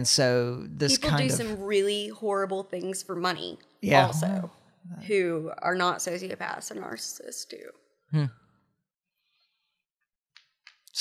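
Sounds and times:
person murmuring hmm: 0:00.8 - 0:01.6, 0:03.8 - 0:04.5.

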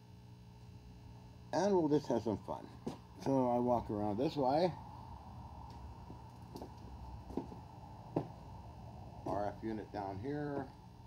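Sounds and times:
low background hum: 0:00.0 - 0:11.0
faint footsteps: 0:02.6 - 0:03.4, 0:05.6 - 0:08.6, 0:09.2 - 0:09.6.

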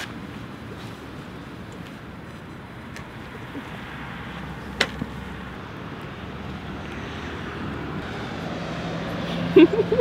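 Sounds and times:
distant vehicle rumble: 0:00.0 - 0:10.0.

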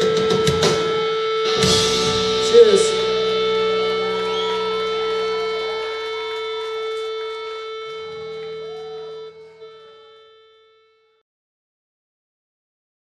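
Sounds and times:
rock band chord ringing out: 0:00.0 - 0:10.6.

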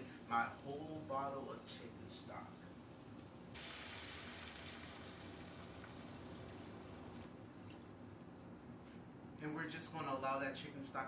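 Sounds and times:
stock pouring into a pot: 0:03.6 - 0:08.1.

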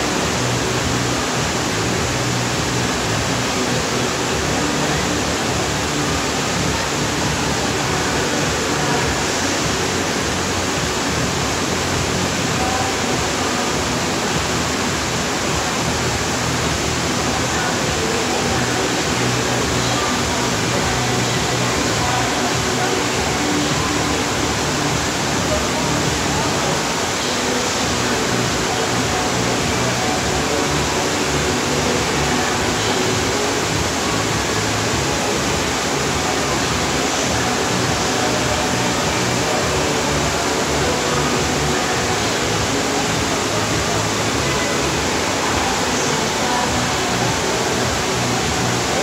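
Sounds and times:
music: 0:00.0 - 0:49.0
voices: 0:00.0 - 0:49.0
water rushing: 0:00.0 - 0:49.0.

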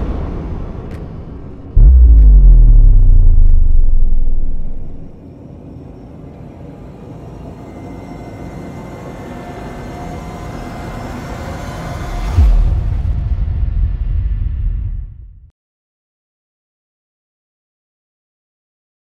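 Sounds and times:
deep boom: 0:01.8 - 0:05.2
low hit: 0:01.8 - 0:05.2
rising swell: 0:01.8 - 0:05.2.

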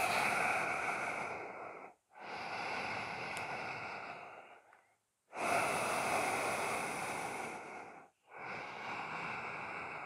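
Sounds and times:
person breathing through the throat: 0:00.0 - 0:10.0.

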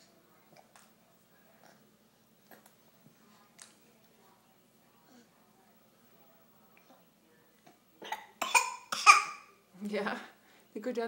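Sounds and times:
baby coughing: 0:08.0 - 0:09.5.

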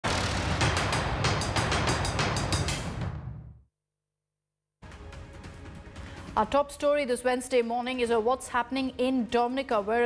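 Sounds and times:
rapid drum-like hits: 0:00.0 - 0:03.5.

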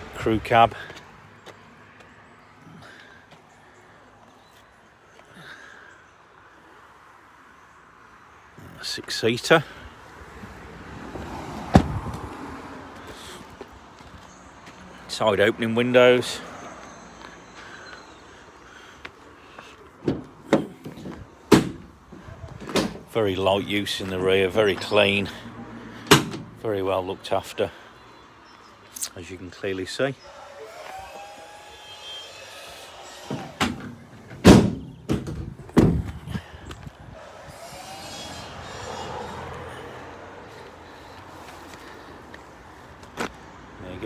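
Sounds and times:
van door slamming: 0:11.7 - 0:12.0, 0:20.0 - 0:21.9, 0:26.1 - 0:26.5, 0:33.2 - 0:36.2
van door clunks: 0:11.7 - 0:12.2, 0:20.0 - 0:21.9, 0:26.1 - 0:26.5, 0:33.3 - 0:36.3.

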